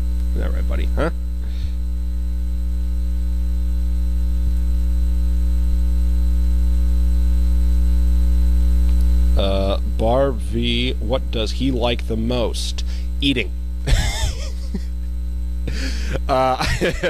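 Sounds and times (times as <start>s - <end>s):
electrical mains hum: 0.0s - 17.0s.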